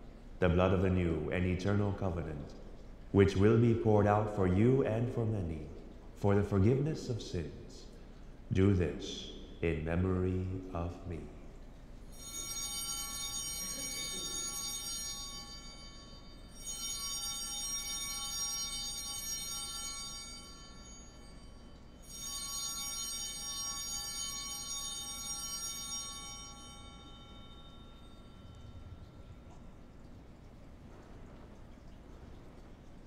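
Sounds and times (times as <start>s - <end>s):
altar bells ringing: 12.1s - 30.3s.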